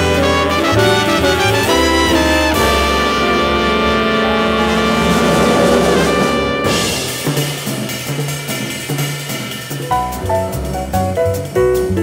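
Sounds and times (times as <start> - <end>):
jazz with brass: 0.0 - 12.0.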